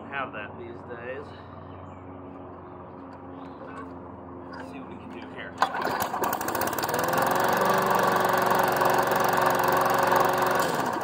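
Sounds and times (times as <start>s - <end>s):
lawn mower engine running: 3.0s - 11.0s.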